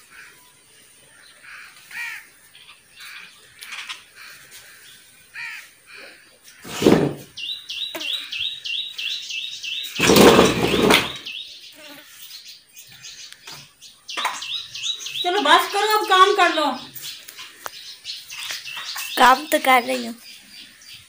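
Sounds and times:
small bird chirping: 0.1s - 21.0s.

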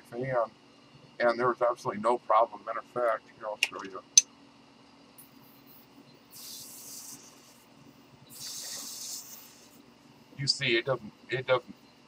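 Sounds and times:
plasma lighter hissing: 6.3s - 7.6s, 8.3s - 9.8s.

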